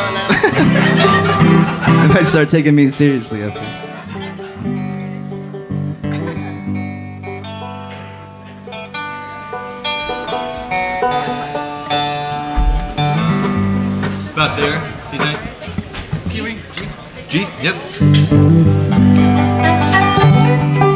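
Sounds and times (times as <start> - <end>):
guitar and banjo noodling: 0.0 - 20.9.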